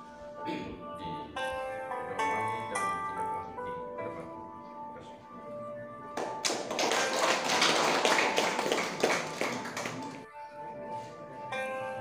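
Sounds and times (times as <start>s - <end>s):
background music: 0.0s - 12.0s
people clapping: 6.0s - 10.3s.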